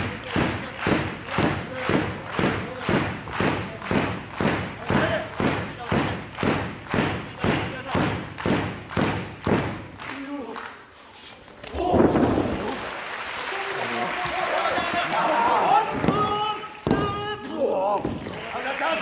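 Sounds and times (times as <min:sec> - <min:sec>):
crowd clapping in unison: 0:00.0 - 0:11.0, 0:11.6 - 0:19.0.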